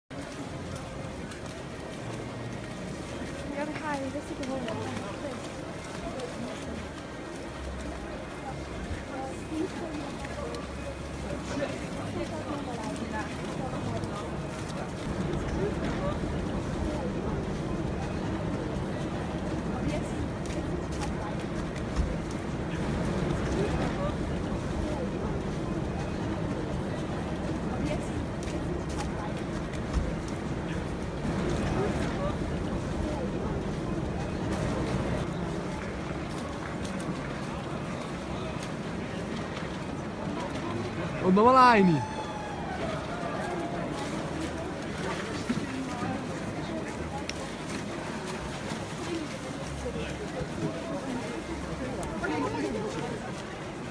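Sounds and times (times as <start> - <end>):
faint voices: 0.1 - 53.9.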